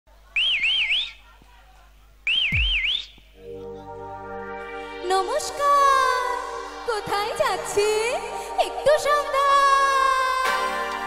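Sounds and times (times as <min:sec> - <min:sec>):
high warbling whistle tone: 0:02.3 - 0:09.6
held keyboard chords: 0:03.4 - 0:11.0.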